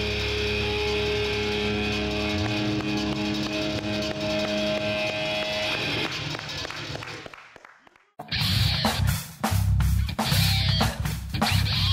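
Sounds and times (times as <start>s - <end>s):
rock band sustained chord: 0.0s - 6.4s
low bass: 0.0s - 6.6s, 8.2s - 11.9s.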